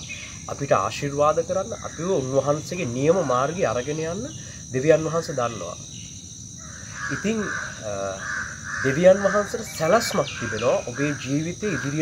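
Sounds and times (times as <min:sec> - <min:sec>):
high-pitched insect drone: 0:00.0 - 0:12.0
man talking: 0:07.1 - 0:08.2, 0:08.9 - 0:12.0.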